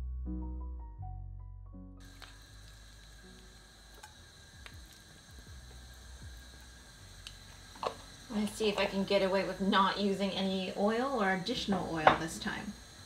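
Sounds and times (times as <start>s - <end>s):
piano background music: 0.0s - 8.9s.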